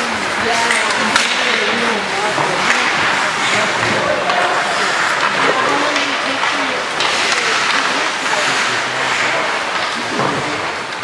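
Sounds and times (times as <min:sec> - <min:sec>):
skates on ice: 0:00.0 - 0:11.0
spectators talking and calling out: 0:00.0 - 0:11.0.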